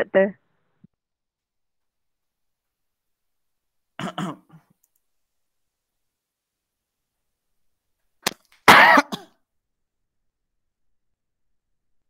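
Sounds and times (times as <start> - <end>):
man clearing his throat: 4.0 - 4.7, 8.7 - 9.3.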